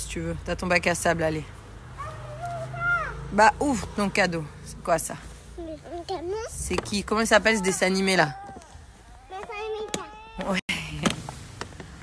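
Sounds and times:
toddler high-pitched vocal sound: 0:02.0 - 0:03.3, 0:05.6 - 0:06.6, 0:07.4 - 0:10.5.

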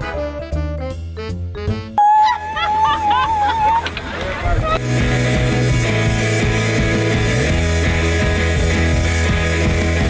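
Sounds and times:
music: 0:00.0 - 0:10.0
women whooping and cheering: 0:02.0 - 0:04.8.

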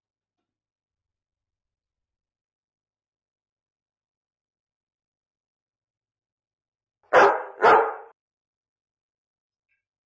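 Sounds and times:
dog barking: 0:07.1 - 0:08.2.

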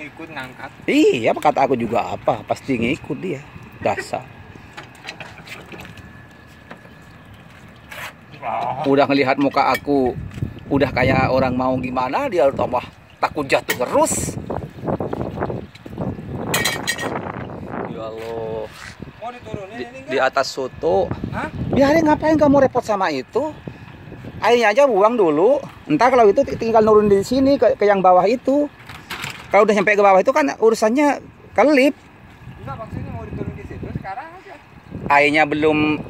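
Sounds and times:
people talking: 0:00.0 - 0:04.3, 0:08.3 - 0:14.4, 0:17.8 - 0:23.6, 0:24.4 - 0:28.7, 0:29.5 - 0:32.0, 0:32.6 - 0:36.0.

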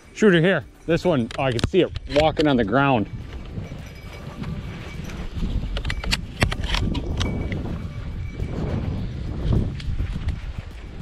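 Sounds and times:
gear clicks and knocks: 0:01.0 - 0:08.2.

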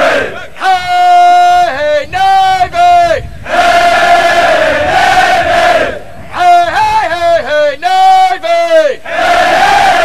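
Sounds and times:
group chanting: 0:00.0 - 0:00.5, 0:03.5 - 0:06.0, 0:09.0 - 0:10.0.

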